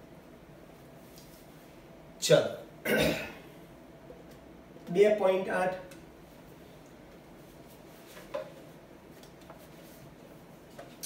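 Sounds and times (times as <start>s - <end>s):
man clearing his throat: 2.8s - 3.5s.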